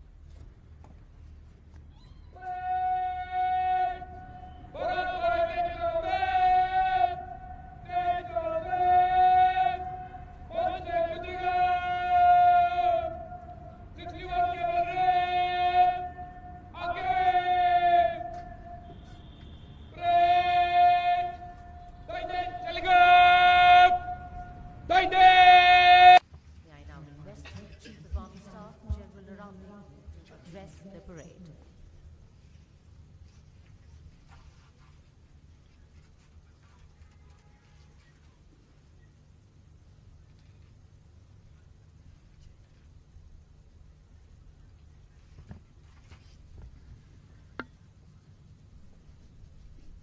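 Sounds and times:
man shouting a command: 2.4 - 18.9, 19.9 - 26.2.

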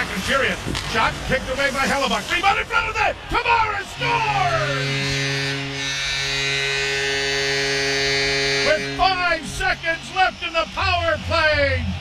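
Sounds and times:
commentator speaking: 0.0 - 4.9, 8.6 - 12.0
goal horn buzzing: 3.6 - 10.5.

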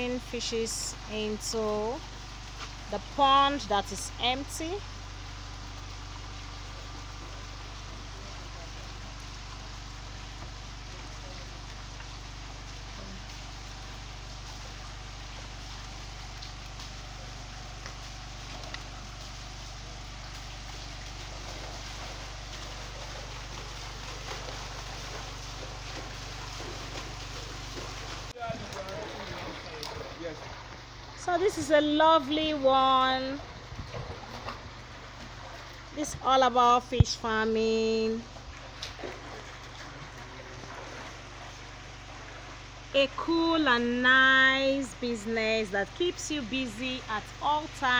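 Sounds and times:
low steady hum: 0.0 - 47.9
water jetting into a pond: 4.8 - 31.7.

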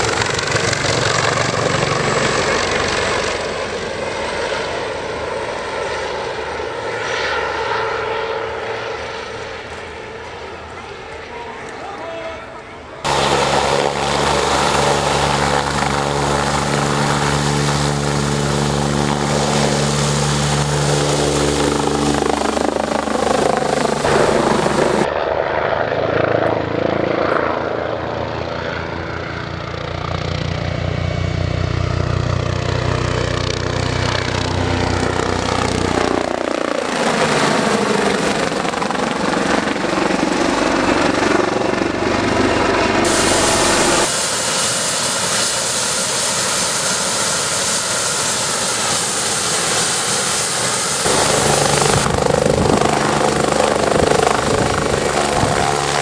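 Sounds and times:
helicopter rotor beating overhead: 0.0 - 56.0
helicopter turbine whine: 0.0 - 56.0.

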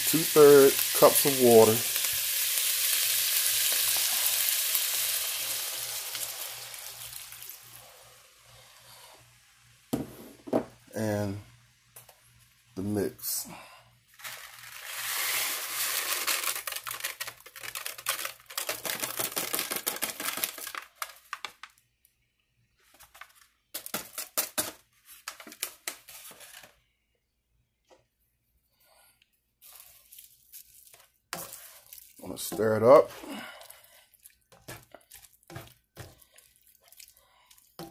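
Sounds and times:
rice rustling from paper bag: 0.0 - 7.8, 14.1 - 21.7, 29.6 - 33.2
water pouring and sizzling in skillet: 0.0 - 9.9, 14.2 - 21.1, 29.6 - 37.9.

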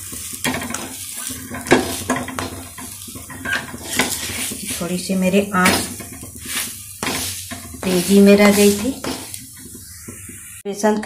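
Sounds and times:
batter sizzling on a pan: 0.0 - 10.6
spatula scraping a pan: 0.1 - 10.6.

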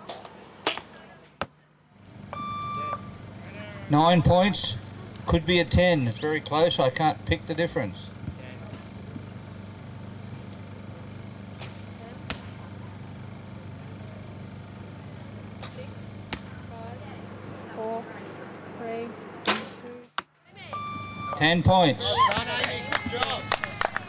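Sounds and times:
low background hum: 0.0 - 24.0.

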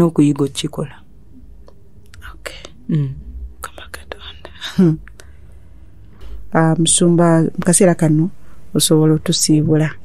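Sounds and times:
low steady hum: 0.0 - 10.0
person whispering: 2.1 - 5.1
person speaking: 2.1 - 5.2.

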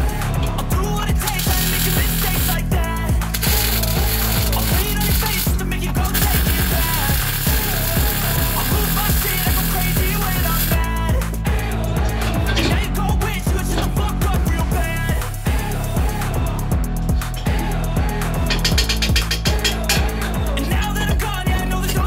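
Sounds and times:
rap music with bass beat: 0.0 - 22.0
welder arc sizzling and crackling: 1.0 - 10.9.

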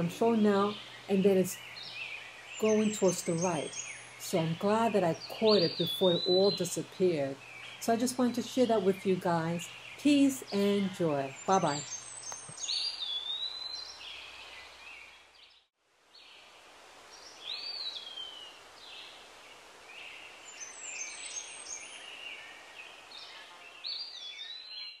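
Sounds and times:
outdoor background noise: 0.0 - 25.0
small birds chirping: 0.0 - 25.0.

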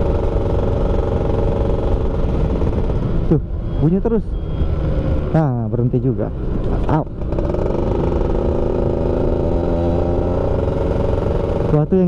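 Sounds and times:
two-stroke motorcycle engine running: 0.0 - 3.3, 6.8 - 12.0
low road rumble: 0.0 - 12.0.

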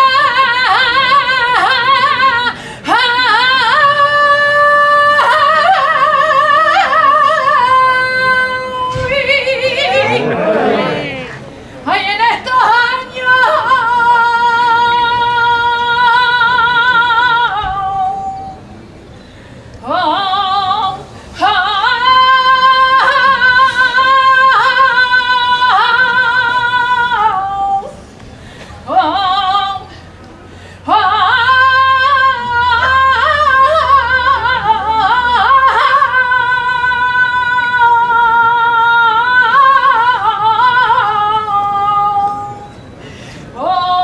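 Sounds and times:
woman singing unaccompanied: 0.0 - 18.6, 19.8 - 27.9, 30.9 - 42.6, 43.6 - 44.0
singer breathing: 19.2 - 19.8, 28.3 - 28.8, 29.9 - 30.9, 42.9 - 43.6.

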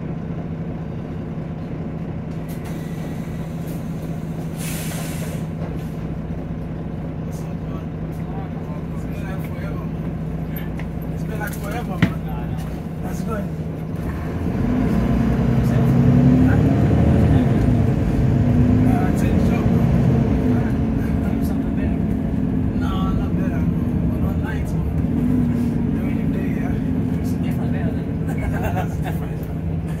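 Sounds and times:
bus engine drone: 0.0 - 30.0.

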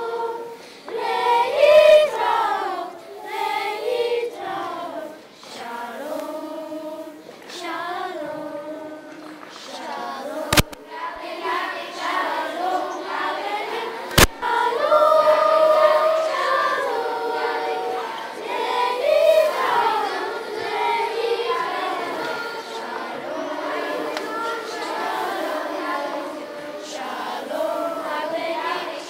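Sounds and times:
children's choir singing: 0.0 - 29.0.

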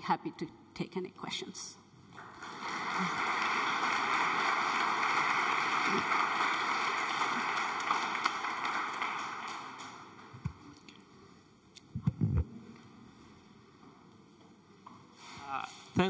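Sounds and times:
audience applauding: 2.2 - 10.6.

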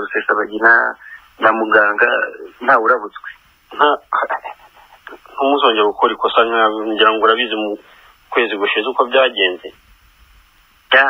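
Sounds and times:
person talking over telephone: 0.0 - 9.8.

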